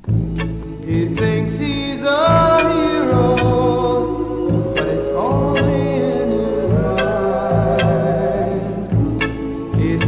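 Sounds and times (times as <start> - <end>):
bass: 0.0 - 10.0
vocal harmony chords: 0.0 - 10.0.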